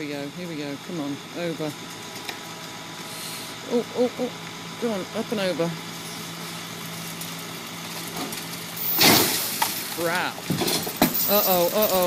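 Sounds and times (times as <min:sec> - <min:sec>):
truck engine running with low hum: 0:00.0 - 0:12.0.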